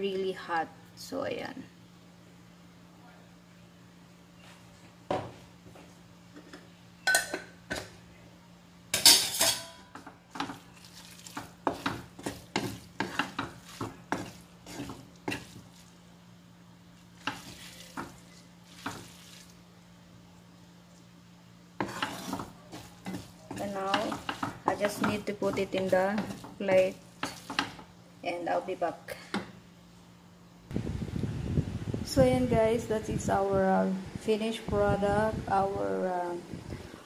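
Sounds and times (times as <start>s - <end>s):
utensil scraping a pan: 10.4s - 15.9s, 17.2s - 19.5s, 21.8s - 27.8s.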